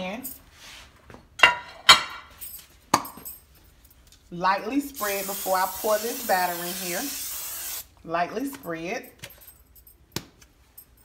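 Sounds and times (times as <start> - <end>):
glass dish clinking on stone counter: 1.4 - 3.3.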